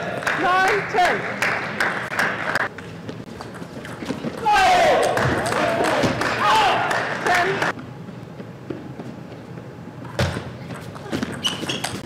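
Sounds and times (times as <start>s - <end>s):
shoe squeaks: 10.2s - 12.0s.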